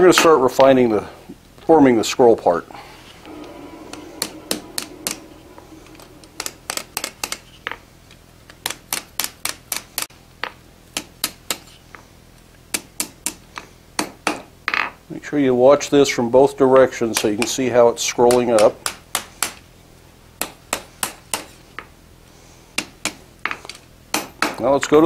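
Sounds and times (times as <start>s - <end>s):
steady low hum: 2.8s - 7.4s.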